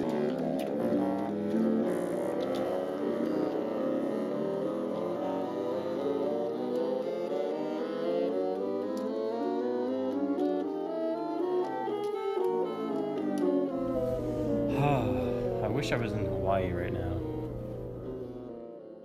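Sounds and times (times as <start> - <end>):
bassoons playing chromatic scale: 0.0 - 18.7.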